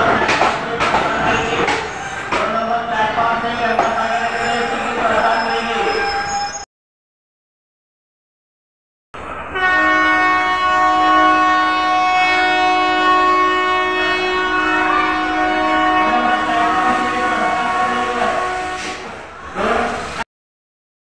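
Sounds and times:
train horn blast: 9.5s - 19.2s.

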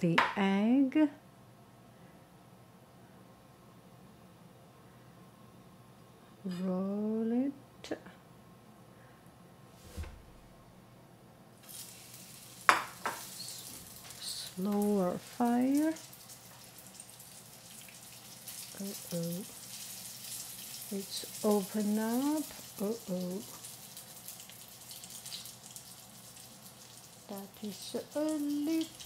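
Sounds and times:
food sizzling in hot oil: 11.6s - 29.0s.

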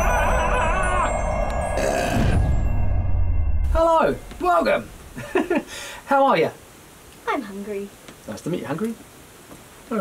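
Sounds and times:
magical shimmering chimes: 0.0s - 5.6s.

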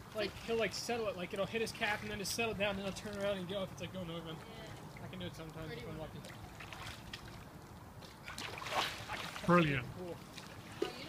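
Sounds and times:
swimmer splashing water: 0.0s - 11.0s.

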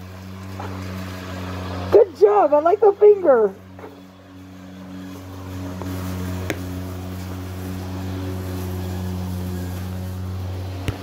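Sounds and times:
low motor drone: 0.0s - 11.0s.

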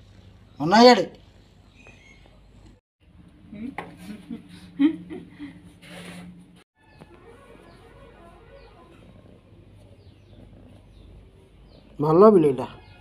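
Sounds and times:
small birds chirping: 0.1s - 2.8s, 7.7s - 13.0s.

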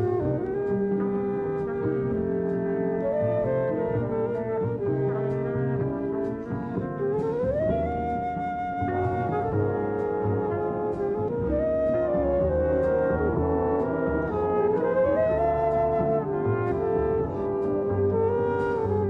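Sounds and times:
brass chords: 0.0s - 7.7s, 12.5s - 19.0s
flute melody: 0.0s - 19.0s
walking bass: 0.0s - 19.0s.

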